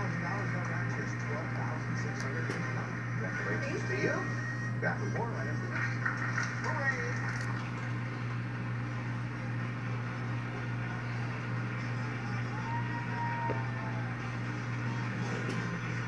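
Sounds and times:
faint television music: 0.0s - 16.0s
steady low hum: 0.0s - 16.0s.

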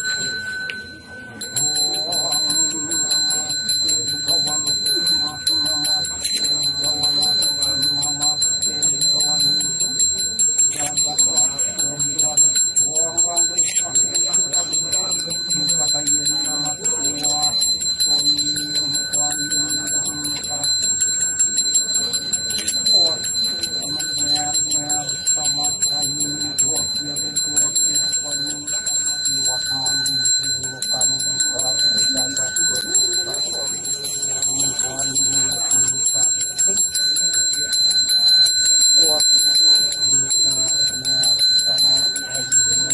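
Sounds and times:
brass hand bell ringing: 0.0s - 42.9s
man chanting prayers: 0.0s - 42.9s.

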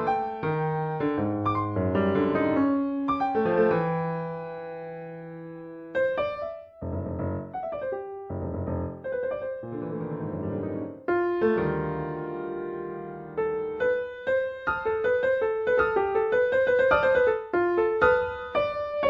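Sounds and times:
solo piano: 0.0s - 19.0s.

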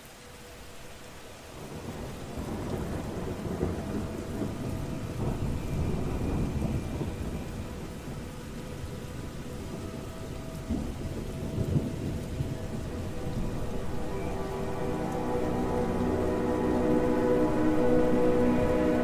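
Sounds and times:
steady rain: 0.0s - 19.0s
rolling thunder: 1.6s - 19.0s.

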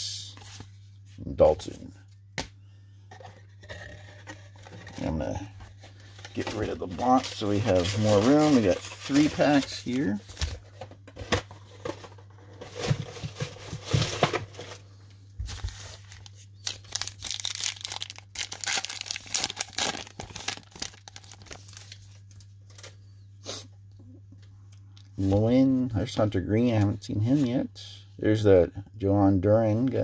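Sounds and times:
wrapper tearing and crinkling: 6.2s - 10.2s, 15.7s - 22.4s.

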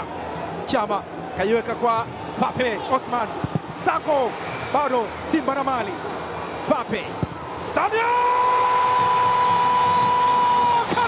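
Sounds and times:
faint crowd noise: 0.0s - 11.0s.

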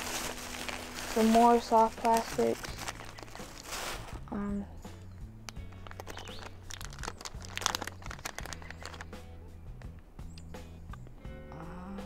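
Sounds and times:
plastic packet crinkling: 0.0s - 4.2s, 5.7s - 9.1s
background music with low notes: 0.0s - 12.0s.

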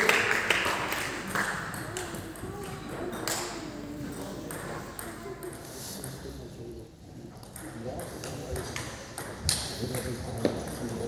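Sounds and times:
voices talking in a hall: 0.0s - 11.0s.

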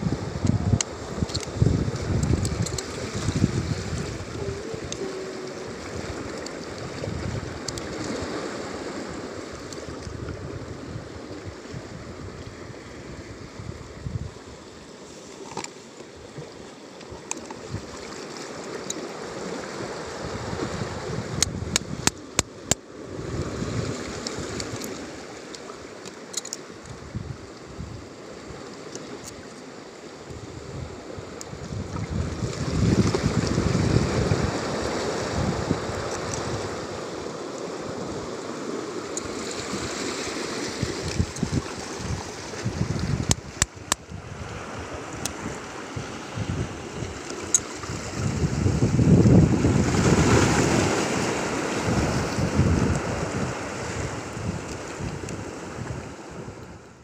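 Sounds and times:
wind buffeting microphone: 0.0s - 14.4s, 20.0s - 24.8s, 26.9s - 28.1s, 30.3s - 37.2s, 40.7s - 56.9s
waves washing against rocks: 0.0s - 56.6s.

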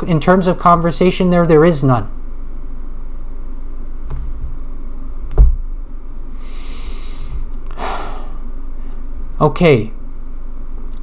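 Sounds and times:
sharp knock: 5.4s - 5.7s.

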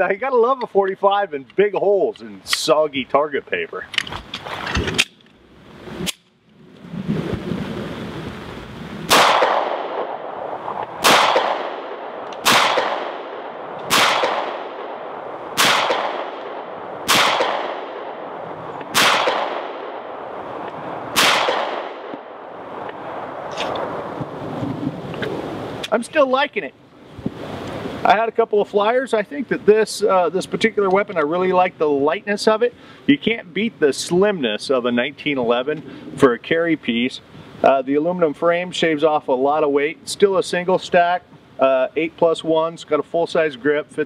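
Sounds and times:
steady background hiss: 0.0s - 44.0s
pistol shots echoing: 9.1s - 20.2s, 21.1s - 22.5s.

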